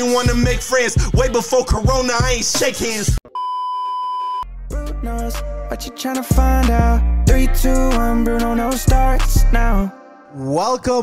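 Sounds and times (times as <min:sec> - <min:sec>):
steady electronic beep: 0:03.3 - 0:04.5
music with deep bass: 0:04.5 - 0:09.9.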